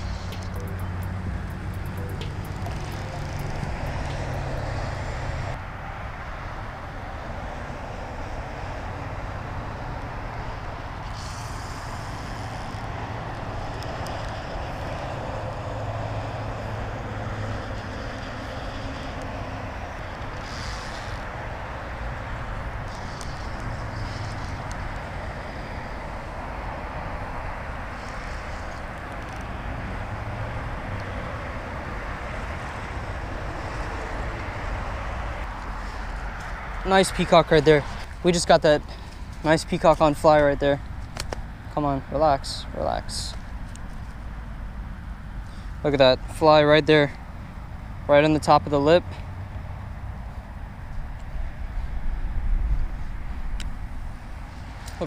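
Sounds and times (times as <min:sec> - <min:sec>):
road traffic passing: 0:00.0 - 0:55.0.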